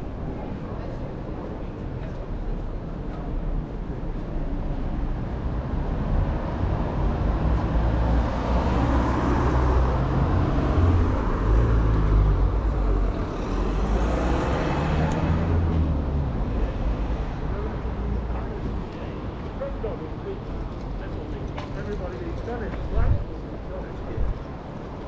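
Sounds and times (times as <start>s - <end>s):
cars driving past: 5.1s - 19.4s.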